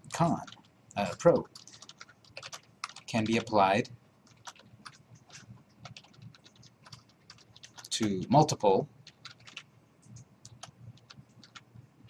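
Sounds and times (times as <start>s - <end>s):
typing on computer keyboard: 0.1s - 8.4s, 9.0s - 11.8s.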